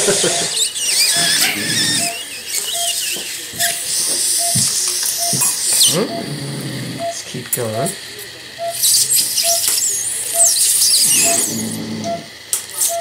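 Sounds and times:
patient monitor beeping: 0.0 - 13.0
high wavering squeaks: 0.2 - 6.0, 8.6 - 12.3.

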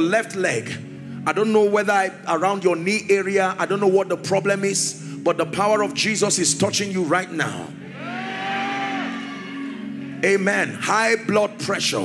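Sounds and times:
soft keyboard chords: 0.0 - 9.0.

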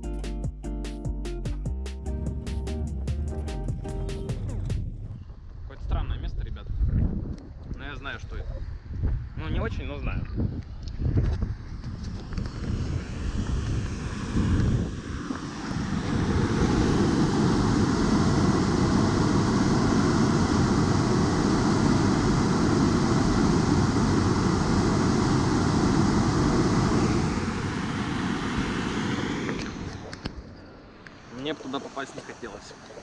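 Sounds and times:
water rushing through a drain: 31.3 - 33.0.

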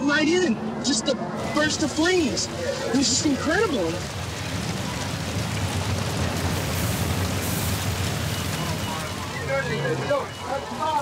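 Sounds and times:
fire crackling: 1.4 - 11.0
fire roaring: 1.4 - 11.0.

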